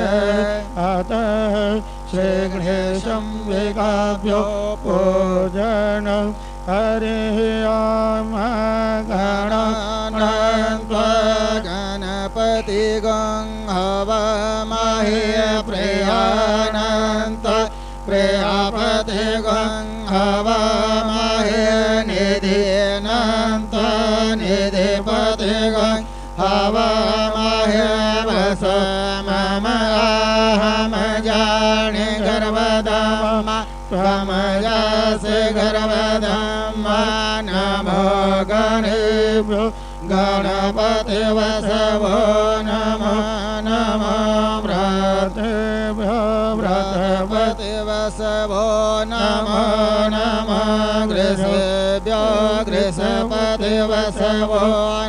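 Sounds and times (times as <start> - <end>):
person chanting: 0.0 - 55.0
steady hum: 0.0 - 55.0.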